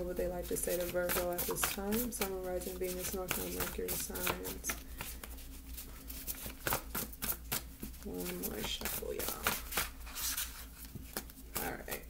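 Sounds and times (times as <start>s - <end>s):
index cards being shuffled: 0.4s - 12.0s.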